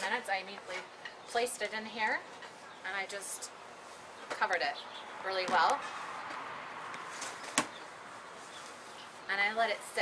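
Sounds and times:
faint rustle: 7.0s - 9.7s.

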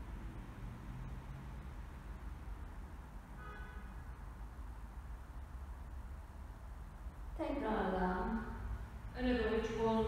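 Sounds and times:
low hum with faint hiss: 0.0s - 10.0s.

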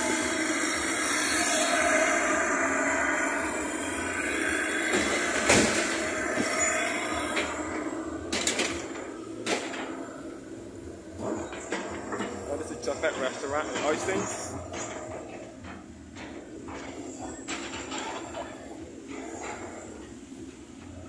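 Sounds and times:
road traffic: 0.0s - 21.0s.

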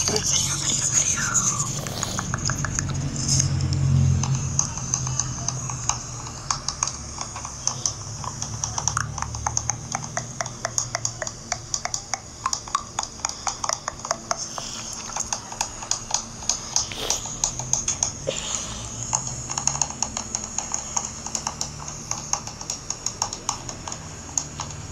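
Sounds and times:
rapid sharp clicks: 1.8s - 18.2s, 18.8s - 24.9s
steady hiss: 9.9s - 24.9s.

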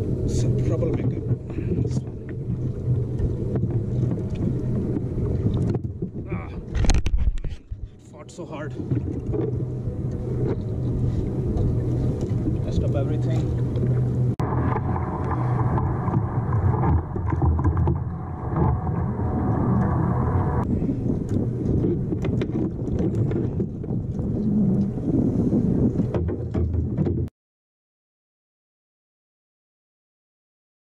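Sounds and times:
wind buffeting camera microphone: 0.0s - 27.3s.

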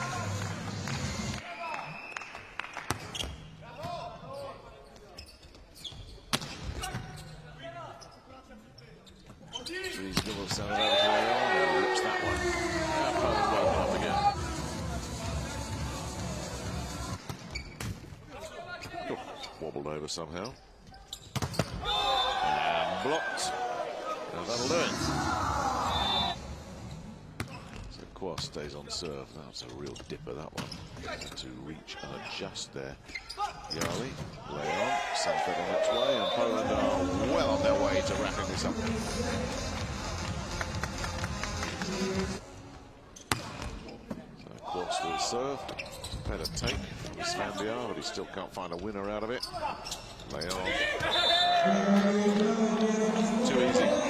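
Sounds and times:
crowd din in indoor arena: 0.0s - 54.0s
volleyball slaps: 2.7s - 3.3s.

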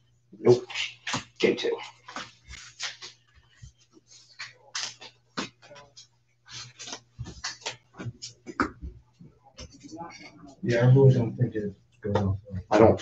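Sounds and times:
trading cards shuffling: 0.7s - 8.6s.

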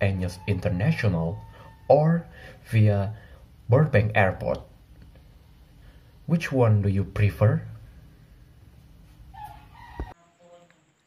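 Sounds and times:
faint pitched call: 0.0s - 2.6s, 9.3s - 10.7s.

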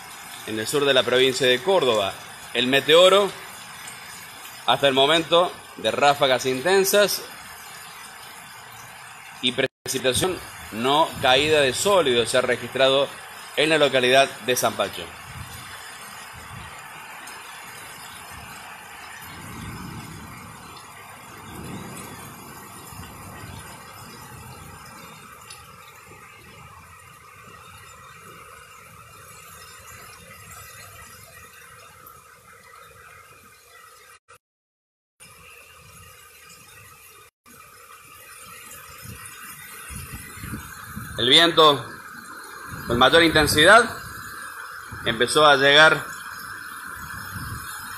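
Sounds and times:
heavy rain on a flooded street: 0.0s - 33.9s, 37.6s - 47.9s
wind gusts buffeting microphone: 15.1s - 17.0s, 18.0s - 25.2s, 39.0s - 41.2s, 42.6s - 45.2s, 46.9s - 47.9s.

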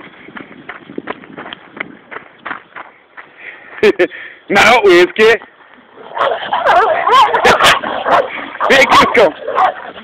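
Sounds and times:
small dogs yipping and whining: 6.2s - 7.8s.

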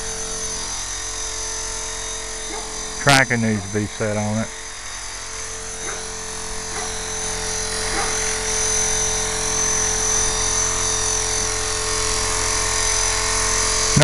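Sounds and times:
electric motor high whine: 0.0s - 14.0s
rotor blades whirring: 0.0s - 14.0s.

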